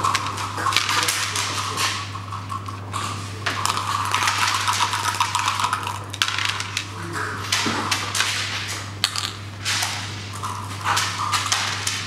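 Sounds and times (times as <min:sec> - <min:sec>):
dice clattering on wooden board: 0:03.4 - 0:06.9, 0:09.0 - 0:09.4
dice rattling in plastic cup: 0:03.5 - 0:06.9.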